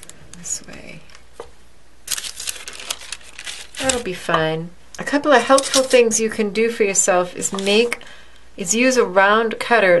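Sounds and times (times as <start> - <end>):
paper crinkling and ticking: 2.1 - 4.1.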